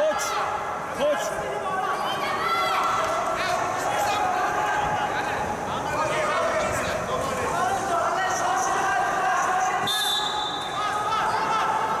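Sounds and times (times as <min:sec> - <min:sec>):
referee's whistle blast: 0:09.8 - 0:10.8.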